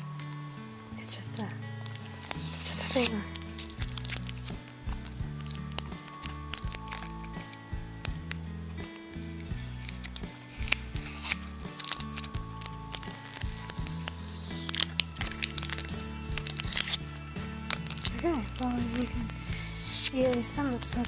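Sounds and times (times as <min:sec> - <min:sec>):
background music: 0:00.0 - 0:21.0
plastic wrapping crinkling: 0:00.0 - 0:21.0.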